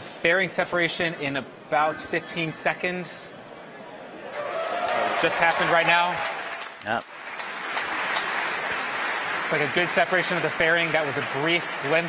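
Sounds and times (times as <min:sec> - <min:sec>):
crowd applauding: 0:04.3 - 0:12.0.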